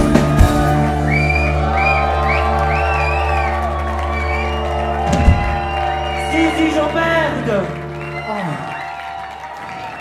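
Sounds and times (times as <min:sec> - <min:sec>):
audience whooping and shouting: 0:00.0 - 0:10.0.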